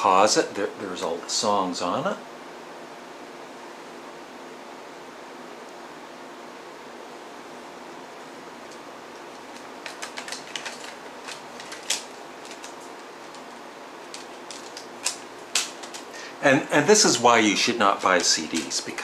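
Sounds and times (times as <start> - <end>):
low room hum: 0.0 - 19.0
plastic case clicking and clattering: 9.5 - 16.1.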